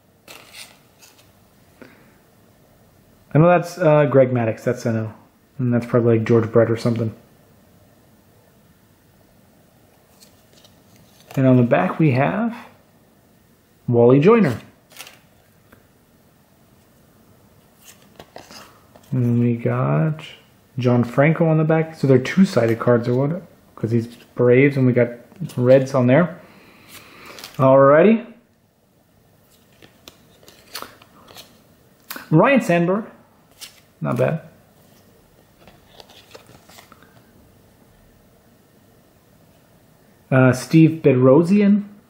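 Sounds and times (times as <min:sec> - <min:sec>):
paper cards clicking and rustling: 0:00.2 - 0:01.3, 0:10.1 - 0:11.4, 0:14.9 - 0:15.3, 0:17.8 - 0:19.2, 0:26.9 - 0:27.6, 0:29.5 - 0:32.2, 0:33.5 - 0:33.9, 0:35.6 - 0:37.3.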